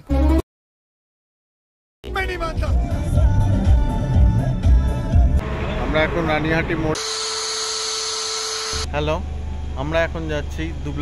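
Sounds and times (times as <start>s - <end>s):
low hum tone: 5.2s - 11.0s
high-pitched whine: 5.4s - 11.0s.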